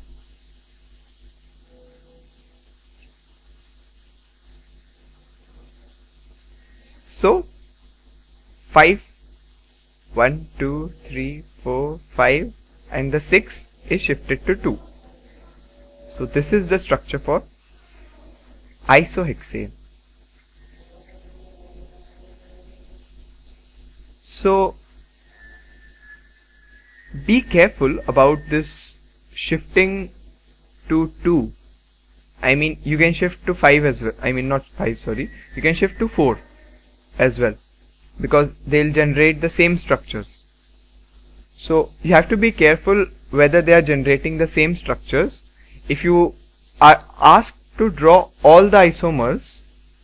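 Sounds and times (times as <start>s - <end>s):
faint high whine: 0.0s - 50.0s
room hiss and mains hum: 0.0s - 50.0s.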